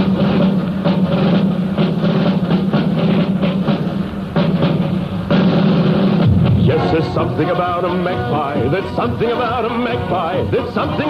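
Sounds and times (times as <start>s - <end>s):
band playing instrumental: 0.0s - 11.0s
steady drum beat: 0.0s - 11.0s.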